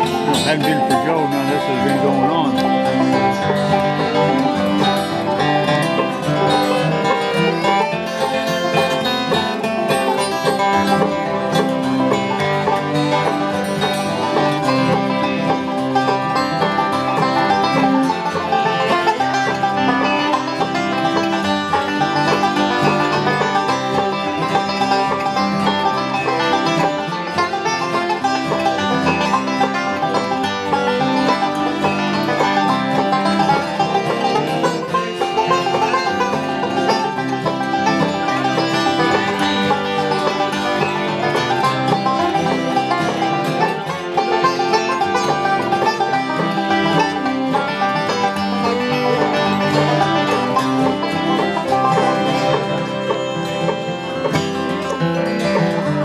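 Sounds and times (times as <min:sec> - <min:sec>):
acoustic guitar rhythm: 0:00.0 - 0:56.0
banjo finger-picked lead: 0:00.0 - 0:56.0
fiddle: 0:00.0 - 0:56.0.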